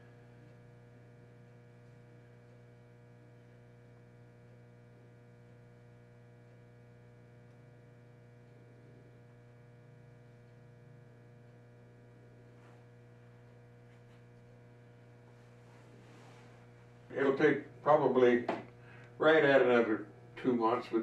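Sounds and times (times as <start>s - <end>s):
low electrical mains hum: 0.0s - 21.0s
faint light scrapes: 15.5s - 16.8s.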